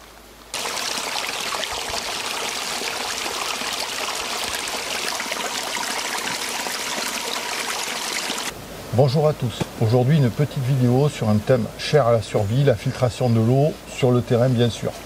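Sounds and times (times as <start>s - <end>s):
stream trickling and splashing: 0.0s - 15.0s.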